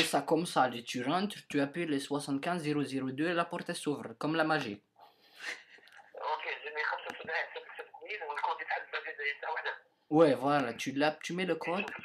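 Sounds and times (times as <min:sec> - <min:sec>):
person talking over phone line: 0:06.1 - 0:09.9, 0:10.7 - 0:12.0
caller replying on phone: 0:06.2 - 0:09.8.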